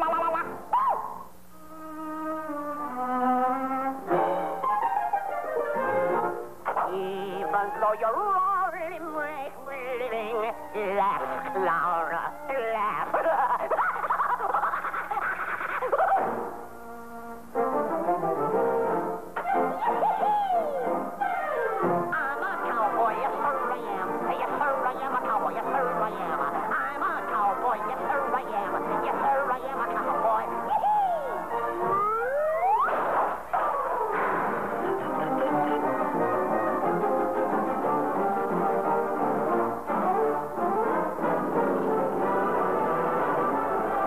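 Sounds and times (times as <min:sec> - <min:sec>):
cartoon orchestral music with brass: 0:01.9 - 0:06.6, 0:16.1 - 0:44.0.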